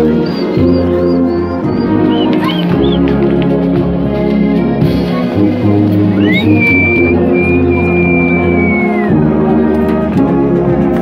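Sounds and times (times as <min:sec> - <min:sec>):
marching brass band playing: 0:00.0 - 0:11.0
high whistle-like tone: 0:00.2 - 0:03.0, 0:06.2 - 0:09.2.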